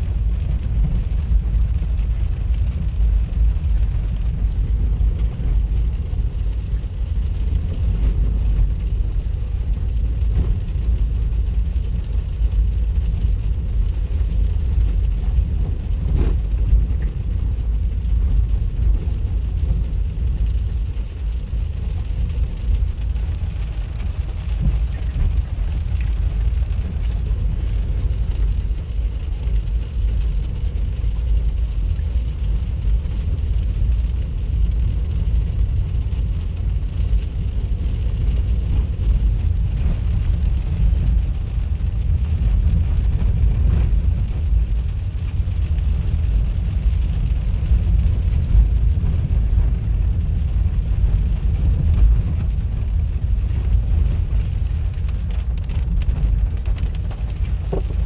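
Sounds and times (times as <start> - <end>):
car cabin rumble on dirt road: 0.0 - 58.0.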